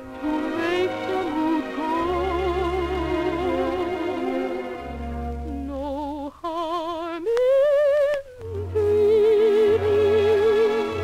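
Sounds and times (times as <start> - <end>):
orchestra: 0.0 - 6.7, 7.9 - 11.0
soprano singing: 0.0 - 11.0.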